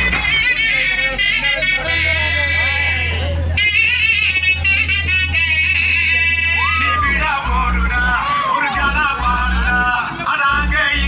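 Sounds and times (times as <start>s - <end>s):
deep bass hum: 0.0s - 11.0s.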